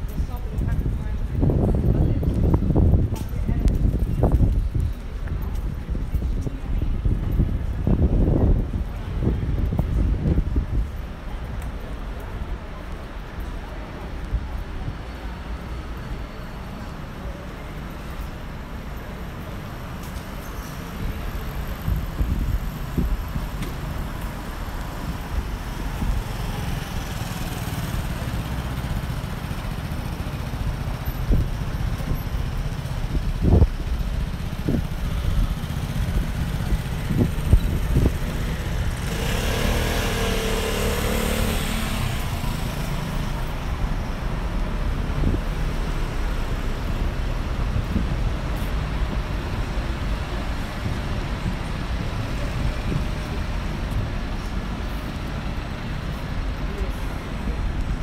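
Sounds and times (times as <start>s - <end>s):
traffic rumble: 0.0s - 58.0s.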